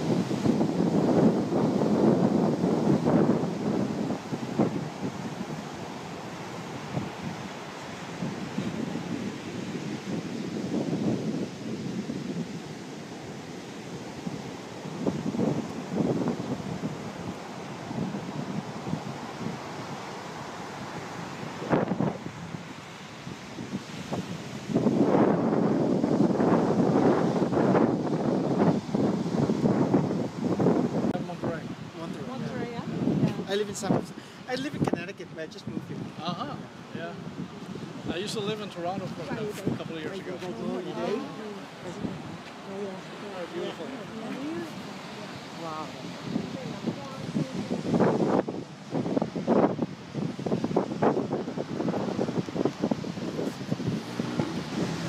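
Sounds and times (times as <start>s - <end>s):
surf breaking on beach: 0.0s - 55.0s
wind buffeting microphone: 0.0s - 55.0s.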